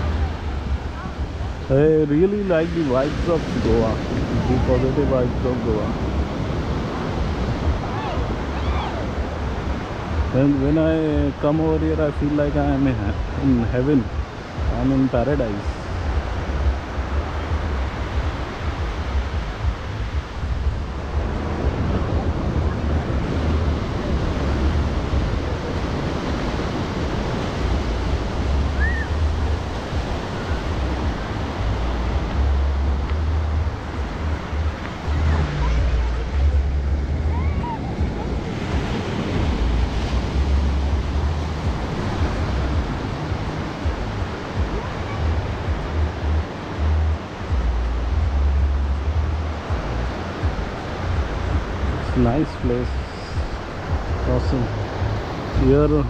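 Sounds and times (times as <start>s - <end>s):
small waves breaking on sand: 0.0s - 56.0s
wind buffeting microphone: 0.0s - 56.0s.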